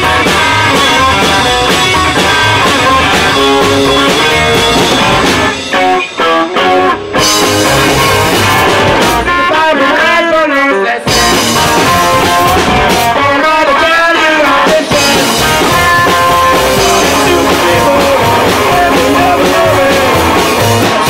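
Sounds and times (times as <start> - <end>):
drums: 0.0 - 21.0
electric guitar: 0.0 - 21.0
live rock band playing loud: 0.0 - 21.0
upright bass: 0.0 - 21.0.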